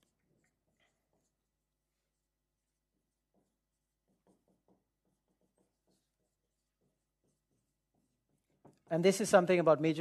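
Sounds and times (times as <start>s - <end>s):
marker scratching on whiteboard: 0.0s - 9.3s.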